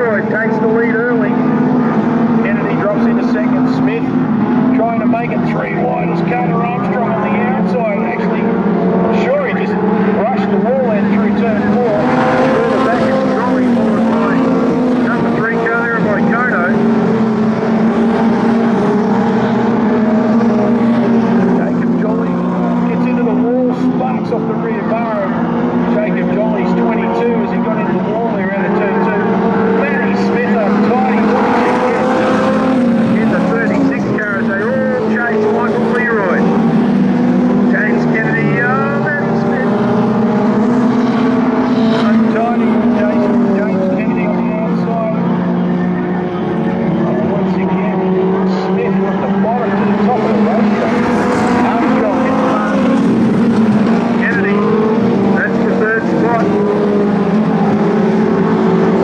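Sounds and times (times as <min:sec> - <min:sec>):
race car engines at high revs: 0:00.0 - 0:59.0.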